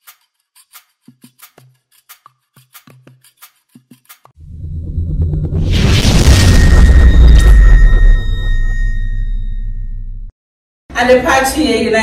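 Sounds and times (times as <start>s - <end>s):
cinematic boom hit: 4.4s - 10.3s
high ringing tone: 4.4s - 10.3s.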